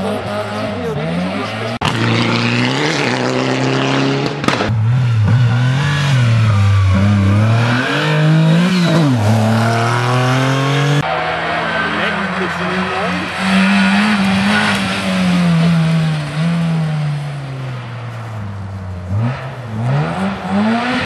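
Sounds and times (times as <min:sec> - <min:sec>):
rally car engines revving: 0:00.0 - 0:21.0.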